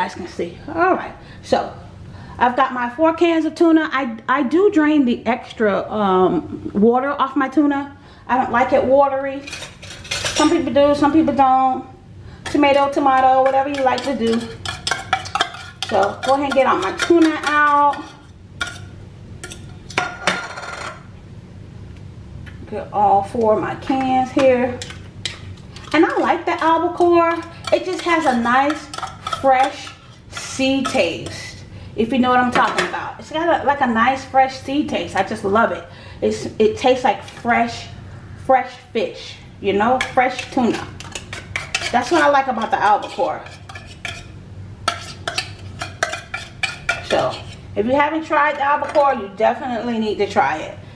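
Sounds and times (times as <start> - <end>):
metal spoon scraping tin cans: 12.5 - 20.9, 24.4 - 31.5, 40.0 - 44.3, 44.9 - 47.6
fork scraping tuna can: 40.4 - 44.3, 44.9 - 47.7.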